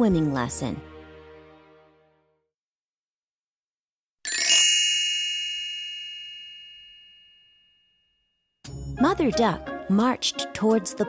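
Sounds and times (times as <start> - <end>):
bell-like chime: 4.3 - 9.0.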